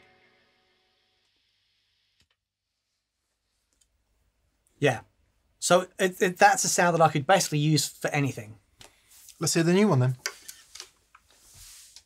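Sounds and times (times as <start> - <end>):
soft high hiss: 0.0 - 12.0.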